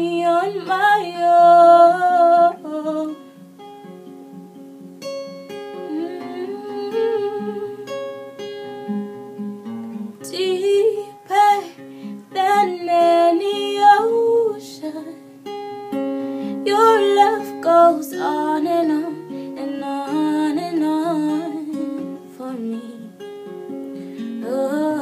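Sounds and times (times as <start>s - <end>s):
woman singing: 0.0s - 3.3s, 5.8s - 8.0s, 10.2s - 15.2s, 16.5s - 23.2s, 24.3s - 25.0s
acoustic guitar chords: 0.0s - 25.0s.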